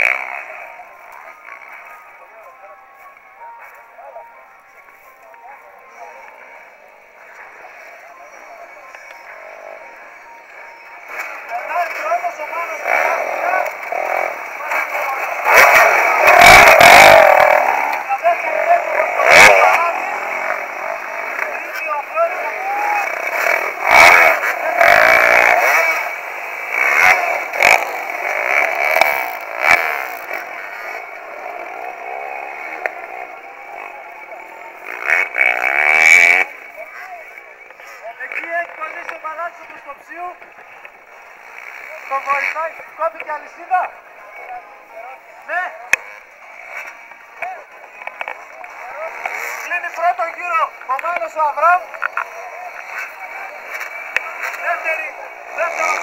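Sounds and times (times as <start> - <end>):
motorcycle engines revving: 0.0 - 56.0
voices of onlookers: 0.0 - 56.0.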